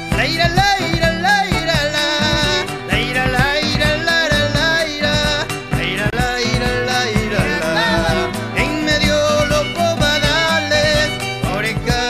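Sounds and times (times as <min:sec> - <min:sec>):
steady drum beat: 0:00.0 - 0:12.0
strummed guitars: 0:00.0 - 0:12.0.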